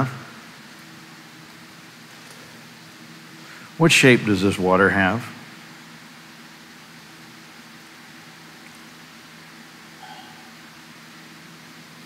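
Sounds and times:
floor fan running: 0.0 - 12.0.

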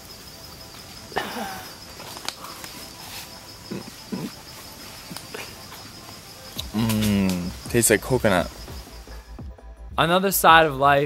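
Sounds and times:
mouth clicks: 6.5 - 7.6.

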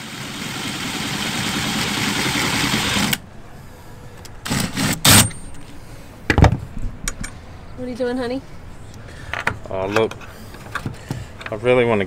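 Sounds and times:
cordless drill boring: 0.9 - 3.2.

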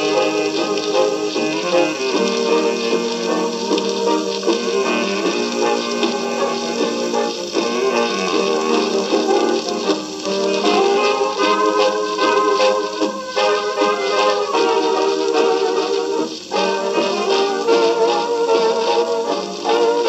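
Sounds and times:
jazz band on an old record: 0.0 - 20.0.

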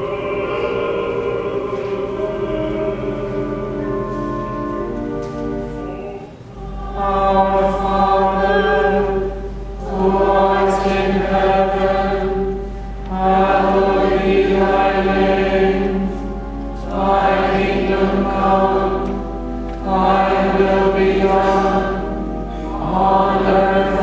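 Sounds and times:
group singing a hymn: 0.0 - 24.0
sustained organ tones: 0.0 - 24.0.

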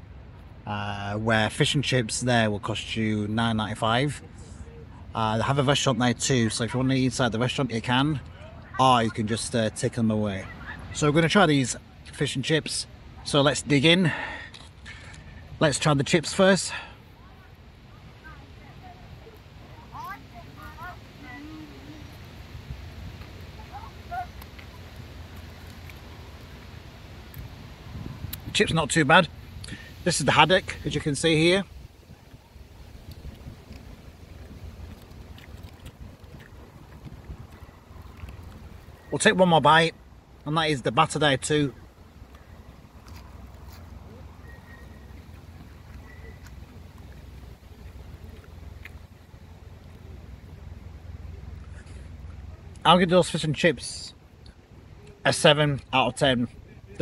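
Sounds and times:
wind rumble on microphone: 20.0 - 39.1
faint short chirp: 44.4 - 45.3, 46.0 - 46.5.

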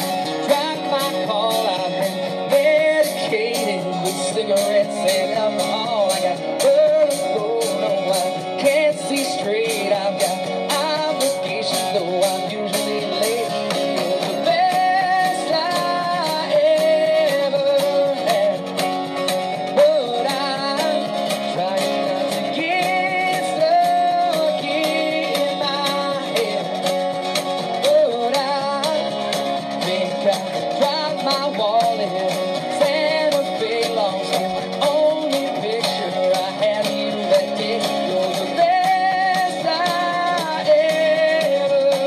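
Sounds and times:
drum and cymbal beat: 0.0 - 42.0
strummed acoustic guitar: 0.0 - 42.0.

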